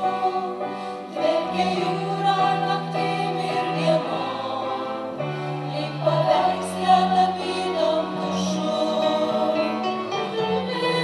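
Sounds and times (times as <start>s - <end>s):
piano: 0.0s - 11.0s
women singing in harmony: 0.0s - 11.0s.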